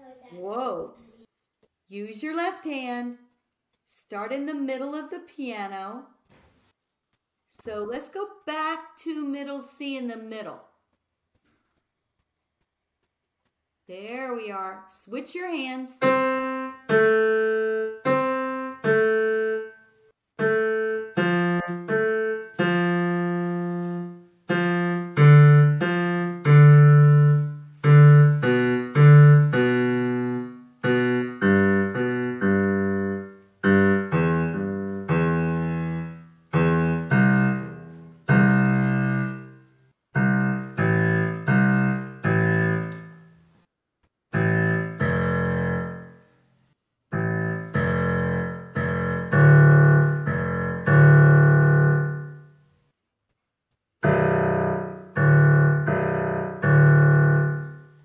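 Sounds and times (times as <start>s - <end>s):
digital piano single notes: 16.0s - 43.5s, 44.3s - 46.3s, 47.1s - 52.6s, 54.0s - 58.0s.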